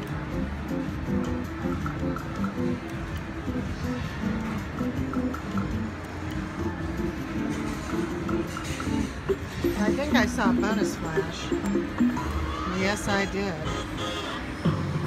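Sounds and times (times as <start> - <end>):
casino background noise: 0.0 - 15.0
slot machine electronic jingle: 7.0 - 14.6.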